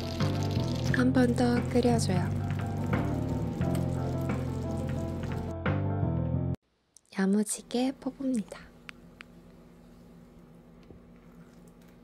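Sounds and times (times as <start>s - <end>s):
curry sizzling and bubbling in a pan: 0.0s - 5.6s
background music: 0.0s - 6.6s.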